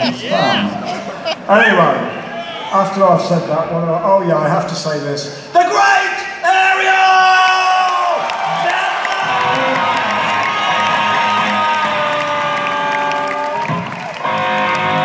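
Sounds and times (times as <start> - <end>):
crowd cheering: 0.1 - 3.2, 6.5 - 15.0
live rock band playing: 9.2 - 15.0
electric guitar chords ringing: 14.2 - 15.0.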